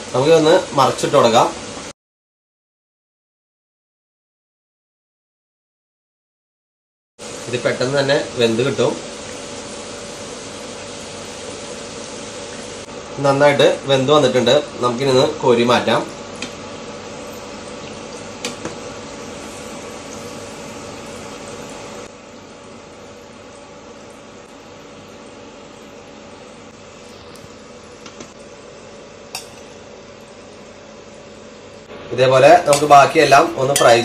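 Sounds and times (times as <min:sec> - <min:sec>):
fritters sizzling in hot oil: 0:07.2 - 0:31.6.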